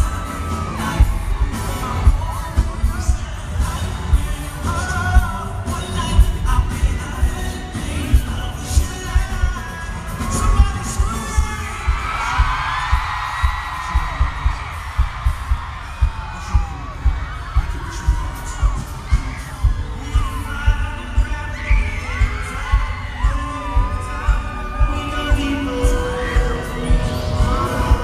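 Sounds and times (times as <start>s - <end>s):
fans screaming: 0.0s - 28.0s
heavy bass beat: 0.0s - 28.0s.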